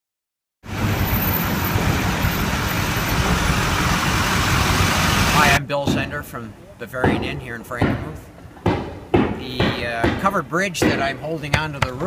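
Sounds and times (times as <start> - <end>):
engine running: 0.7 - 5.6.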